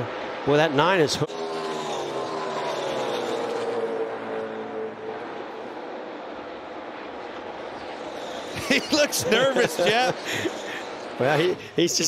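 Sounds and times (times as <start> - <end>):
race car engine passing by: 0.0 - 11.8.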